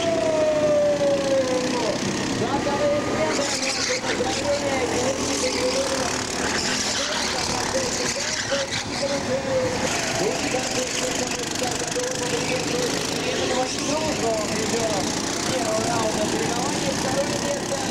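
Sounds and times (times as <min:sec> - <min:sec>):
racing kart engines buzzing: 0:00.0 - 0:17.9.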